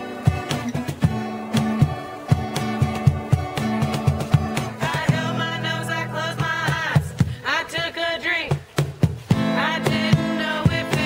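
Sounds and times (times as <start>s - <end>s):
person singing: 0.0s - 8.6s, 9.3s - 11.0s
acoustic guitar strumming blues: 0.0s - 11.0s
cajon slaps: 0.4s - 5.2s, 8.5s - 11.0s.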